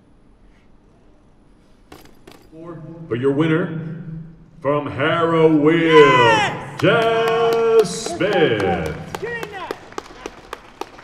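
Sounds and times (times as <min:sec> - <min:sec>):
ring announcer speaking: 0:04.9 - 0:09.8.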